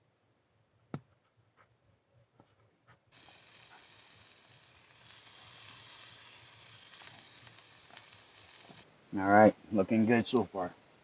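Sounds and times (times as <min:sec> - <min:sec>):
bacon sizzling in a skillet: 0:03.1 - 0:08.9.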